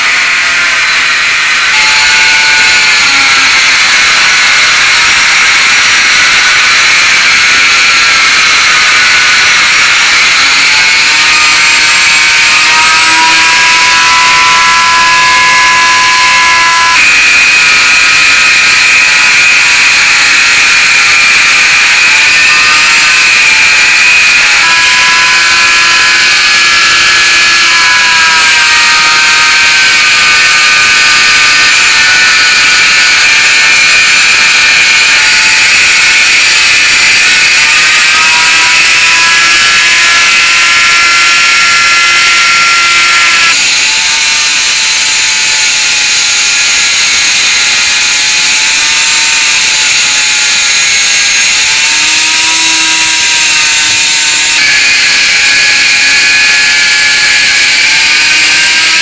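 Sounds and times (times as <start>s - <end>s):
rotary tool wire brush whine: 0.0s - 59.0s.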